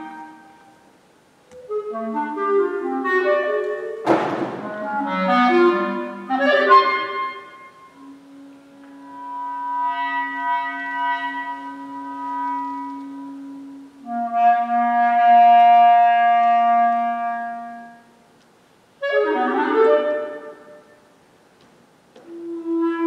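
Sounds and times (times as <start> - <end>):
clarinet playing: 0.0 - 18.3, 19.0 - 21.2, 22.2 - 23.0.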